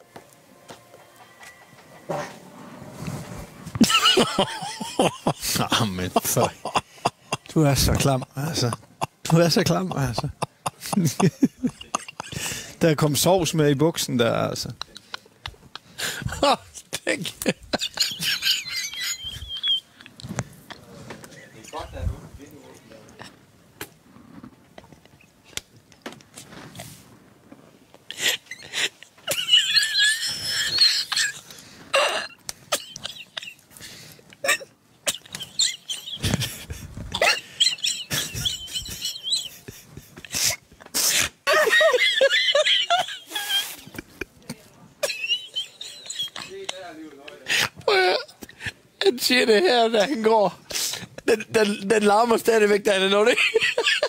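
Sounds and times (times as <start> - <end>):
stifled laughter: 3.7 - 12.8, 14.6 - 20.1, 28.1 - 48.8
high-pitched squeal of laughter: 17.7 - 19.9, 28.1 - 33.6, 35.1 - 40.6, 41.4 - 44.1, 45.0 - 46.8
man farting: 31.3 - 33.1.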